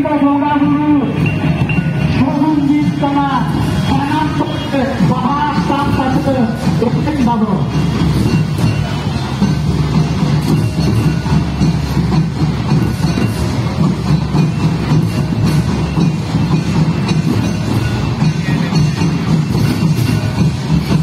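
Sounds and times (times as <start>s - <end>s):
hand drums fast rhythm: 0.6s - 21.0s.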